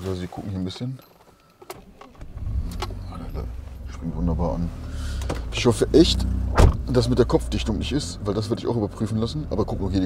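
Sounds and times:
car engine starting and idling: 2.0 - 10.0.

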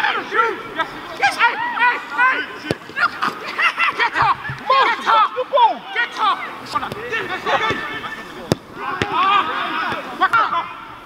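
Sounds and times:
players shouting: 0.0 - 11.0
boot kicking football thuds: 6.8 - 9.3.

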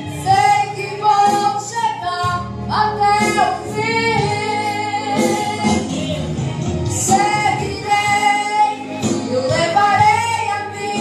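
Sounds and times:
instrumental backing: 0.0 - 11.0
woman singing through loudspeaker: 0.0 - 11.0.

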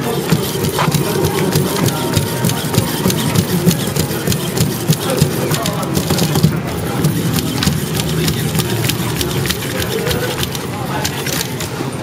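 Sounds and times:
servo motors whirring: 0.0 - 11.9
robot legs clicking on floor: 0.0 - 12.0.

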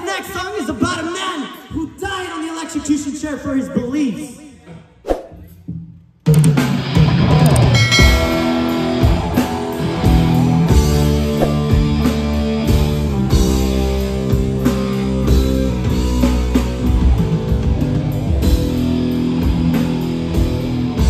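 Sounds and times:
heavy metal band playing: 6.3 - 21.0.

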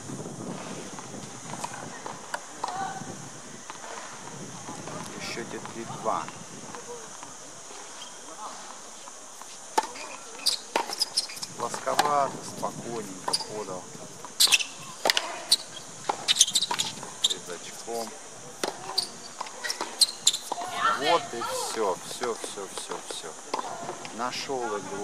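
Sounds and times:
voices in background: 1.4 - 25.0
tennis balls struck by racquets: 9.1 - 25.0
balls bouncing on hard court: 9.4 - 24.2.

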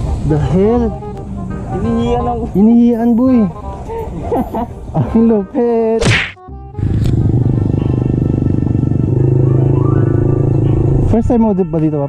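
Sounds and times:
loud steady low tone rising: 6.5 - 11.2.

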